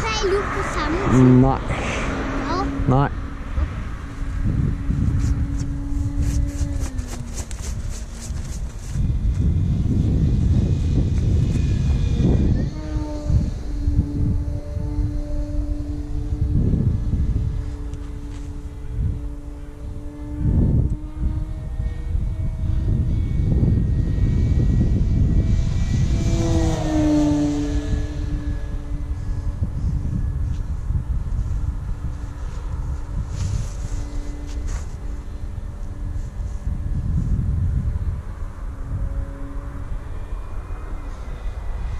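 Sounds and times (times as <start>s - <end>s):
wind gusts on microphone: 0.0s - 41.9s
model plane motor drone: 4.1s - 41.9s.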